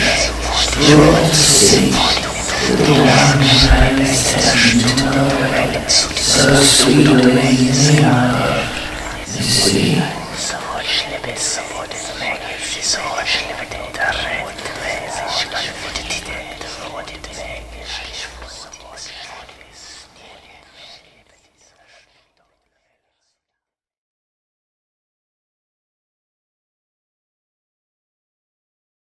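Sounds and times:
person whispering a word: 0:00.0 - 0:23.1.

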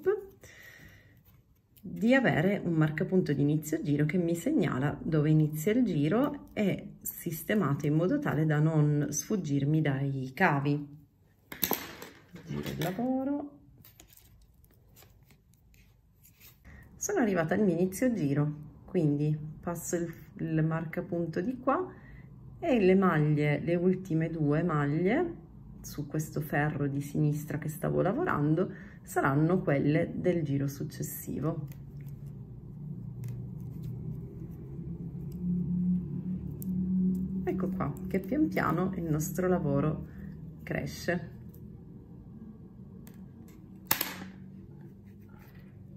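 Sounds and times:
steady low hum: 0:28.6 - 0:45.9.

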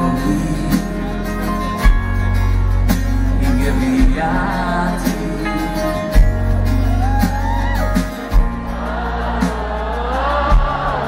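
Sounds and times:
acoustic guitar: 0:00.0 - 0:11.0
band backing: 0:00.0 - 0:11.0.

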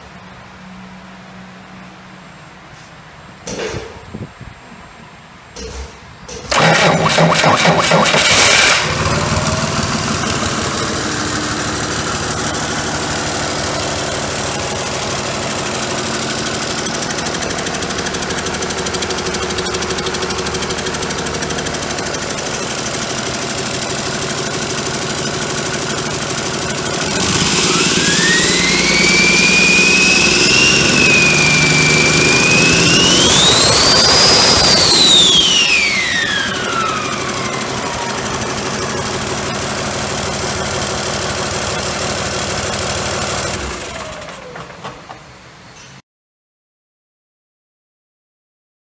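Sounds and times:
diesel engine starting and revving: 0:05.6 - 0:45.3
turbocharger whine: 0:06.3 - 0:44.6.

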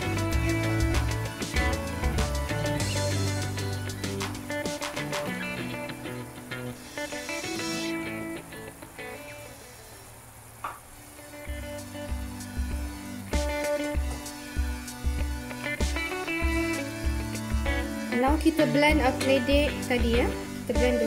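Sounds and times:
steady bass beat: 0:00.0 - 0:05.6, 0:11.5 - 0:18.0, 0:18.9 - 0:21.0
music with sustained tones: 0:00.0 - 0:10.3, 0:11.0 - 0:21.0.

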